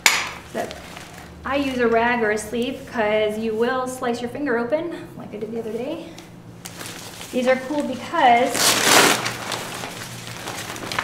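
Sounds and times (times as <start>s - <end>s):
nylon fabric rustling: 0.4s - 4.0s, 6.6s - 11.0s.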